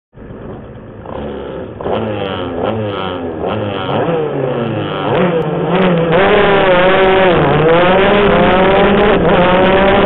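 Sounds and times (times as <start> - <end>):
kart engine running: 0.2 - 10.0.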